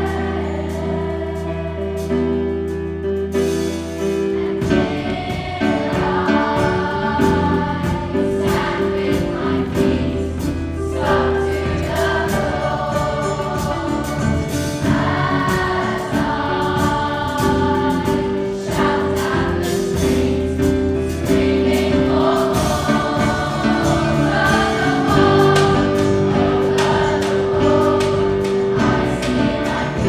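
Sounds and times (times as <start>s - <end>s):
children's choir singing pop song: 0.0s - 30.0s
live band with piano and guitars: 0.0s - 30.0s.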